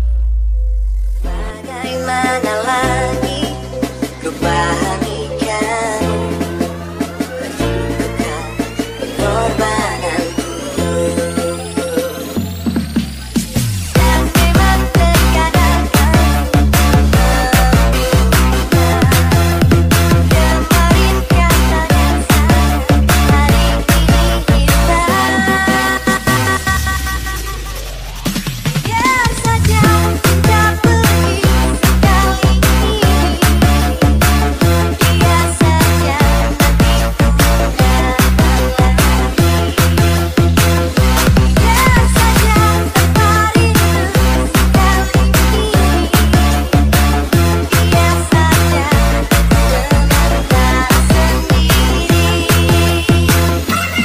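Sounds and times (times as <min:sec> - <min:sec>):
electronic dance music with heavy bass: 0:00.0 - 0:54.0.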